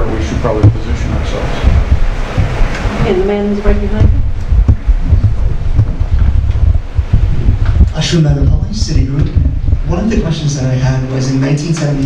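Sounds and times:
microphone handling rumble: 0.0s - 12.0s.

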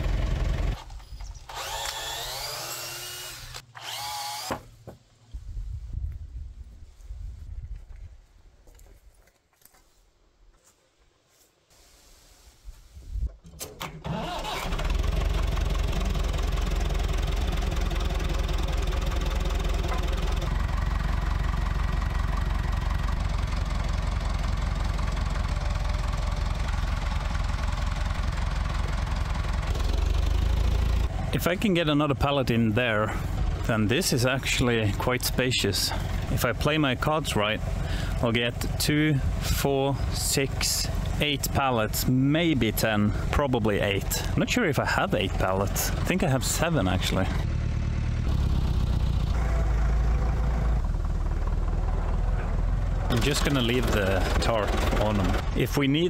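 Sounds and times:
tractor engine starting and running: 0.0s - 4.9s, 13.1s - 56.0s.

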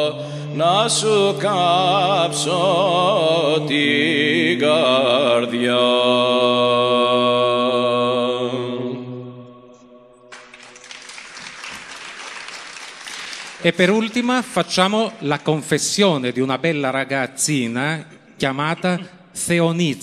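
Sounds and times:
man singing with vibrato: 0.0s - 10.0s
applause: 10.3s - 16.0s.

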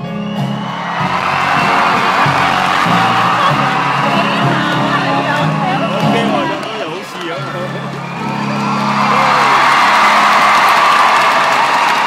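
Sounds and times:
crowd cheering and screaming: 0.0s - 12.0s.

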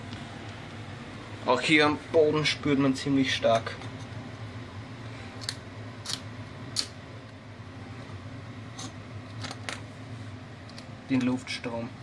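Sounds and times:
air conditioner hum: 0.0s - 12.0s.

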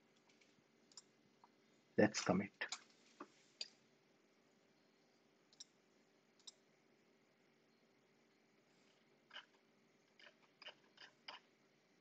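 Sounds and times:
faint computer mouse clicks: 5.5s - 5.8s, 6.4s - 6.6s.

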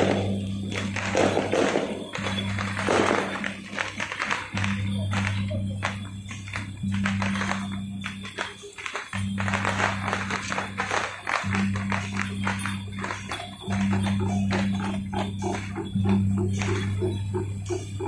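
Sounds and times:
jangling clattering percussion: 0.0s - 18.0s
low droning tone: 0.0s - 18.0s.

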